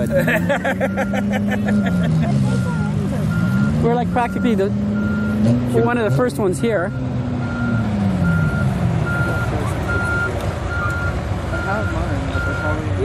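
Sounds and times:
loader engine noise: 0:00.0 - 0:13.0
reversing alarm beeping: 0:00.8 - 0:12.8.

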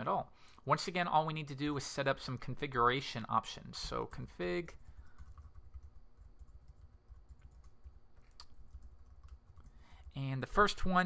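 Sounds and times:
typing on computer keyboard: 0:04.8 - 0:10.2.

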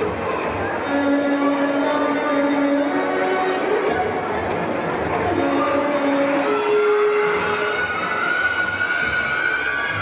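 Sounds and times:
music with long held notes: 0:00.0 - 0:10.0.

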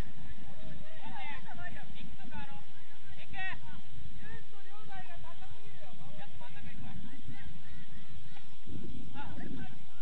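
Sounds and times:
low irregular rumble: 0:00.0 - 0:10.0.

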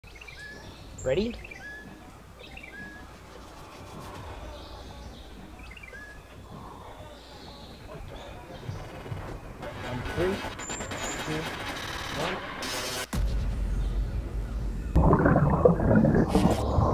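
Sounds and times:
birds chirping: 0:00.0 - 0:09.6, 0:13.6 - 0:16.9
outdoor background noise: 0:00.0 - 0:16.9.

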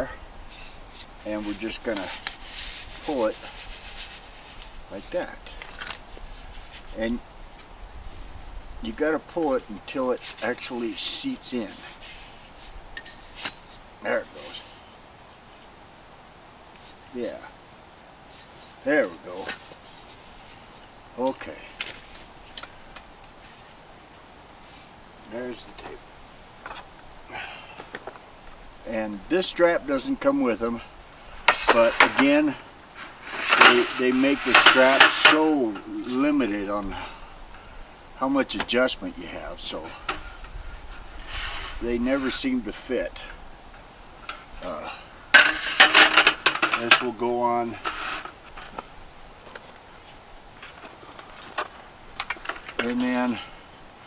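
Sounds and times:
low background hiss: 0:00.0 - 0:54.0.

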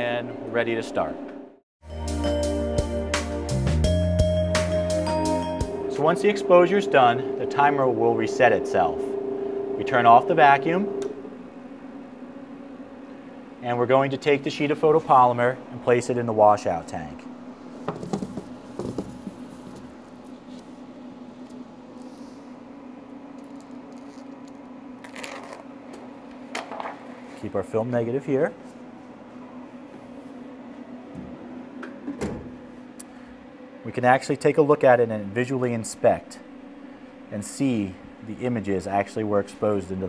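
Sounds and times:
machine humming: 0:00.0 - 0:26.5, 0:27.2 - 0:40.0
machine steady tone: 0:04.1 - 0:13.8.

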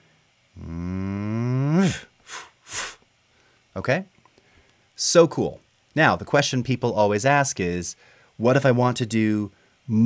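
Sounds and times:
man holding low vocal tone: 0:00.5 - 0:03.0.

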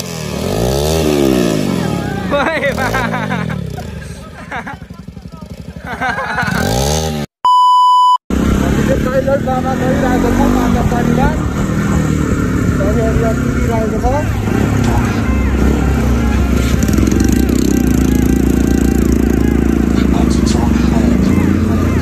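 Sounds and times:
motorcycle engines running: 0:00.0 - 0:07.3, 0:08.3 - 0:22.0
voices: 0:01.4 - 0:06.7, 0:08.4 - 0:22.0
loud electronic beep: 0:07.4 - 0:08.2.

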